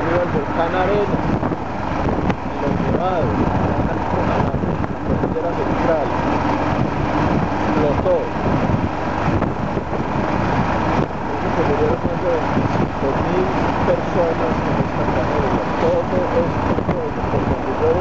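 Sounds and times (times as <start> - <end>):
motorcycle engine and tyre noise: 0.0 - 18.0
wind rush on microphone: 0.0 - 18.0.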